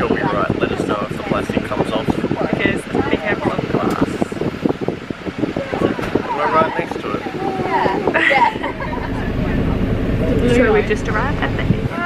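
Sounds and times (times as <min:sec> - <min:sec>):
air-conditioning fan rushing: 0:00.0 - 0:12.0
voices talking: 0:00.0 - 0:12.0.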